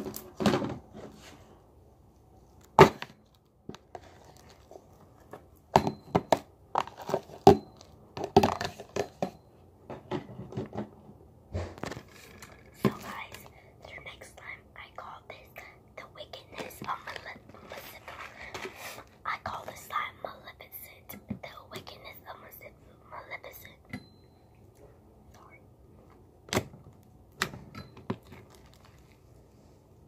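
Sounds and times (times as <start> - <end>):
person whispering: 12.8 - 23.9, 25.3 - 25.7
slime crackling and squishing: 28.2 - 29.3.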